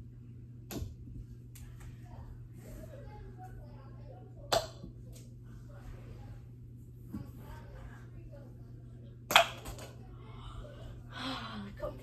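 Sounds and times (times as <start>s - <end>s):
plastic ball striking plastic cup: 9.3s - 9.9s.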